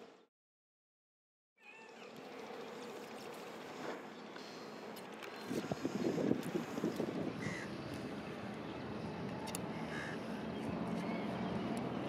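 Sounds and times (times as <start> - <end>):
outdoor background noise: 1.6 - 12.0.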